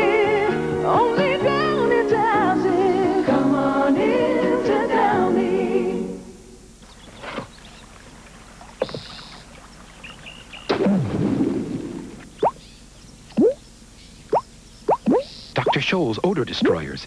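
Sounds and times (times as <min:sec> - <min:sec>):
quick downward pitch drops: 0:13.3 - 0:13.6, 0:14.3 - 0:15.8.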